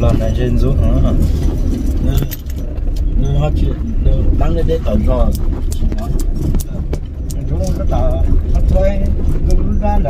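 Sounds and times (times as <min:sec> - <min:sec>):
car rumbling on the move: 0:00.0 - 0:10.0
loose keys jingling: 0:02.0 - 0:03.4.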